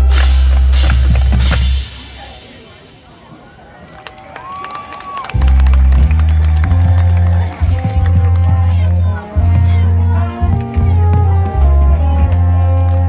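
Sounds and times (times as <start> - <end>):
marching band playing: 0.0 - 3.5, 5.2 - 13.0
crowd murmur: 0.0 - 13.0.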